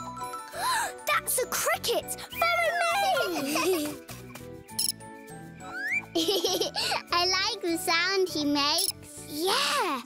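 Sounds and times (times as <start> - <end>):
light children's music: 0.0 - 10.0.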